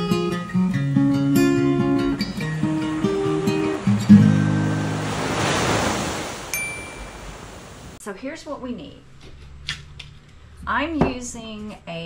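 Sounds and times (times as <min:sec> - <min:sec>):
acoustic guitar chord: 0:00.1 - 0:05.2
ocean surf on beach: 0:01.2 - 0:08.0
short high chime: 0:06.5 - 0:07.4.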